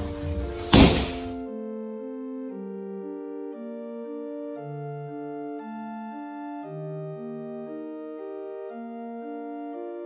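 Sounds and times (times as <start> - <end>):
sustained keyboard music: 0.0 - 10.0
punch thudding on punching bag: 0.7 - 1.4.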